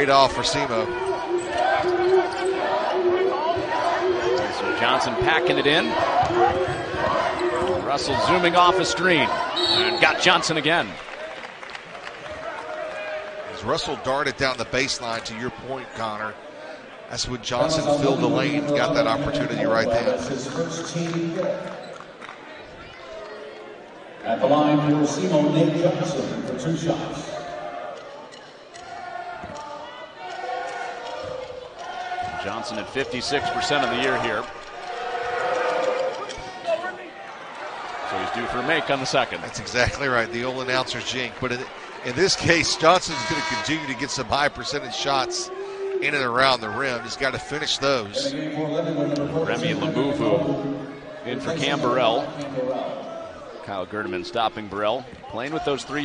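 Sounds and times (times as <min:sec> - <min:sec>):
crowd voices: 0:00.0 - 0:56.0.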